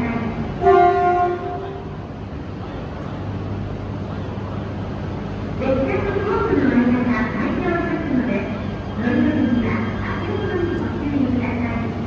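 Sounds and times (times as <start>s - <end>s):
train horn blast: 0.6s - 1.8s.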